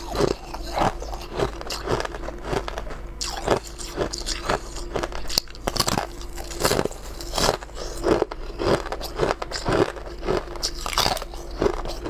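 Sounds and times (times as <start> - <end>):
crunchy bites and chewing: 0.0 - 12.0.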